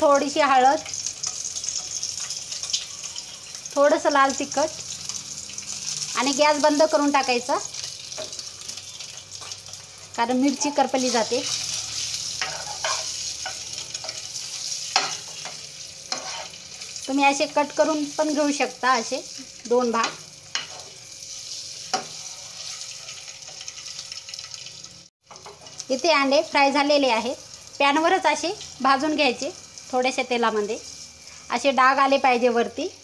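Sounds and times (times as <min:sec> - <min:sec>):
oil sizzling in a pan: 0:00.0 - 0:33.0.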